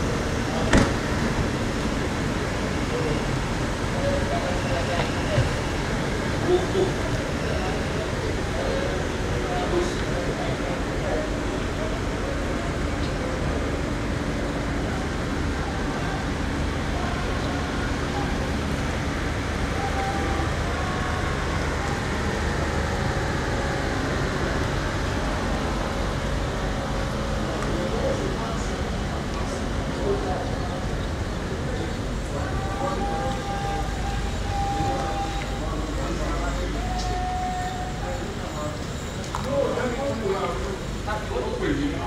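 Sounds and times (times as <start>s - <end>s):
car engines and road noise: 0.0s - 42.0s
people talking: 0.0s - 42.0s.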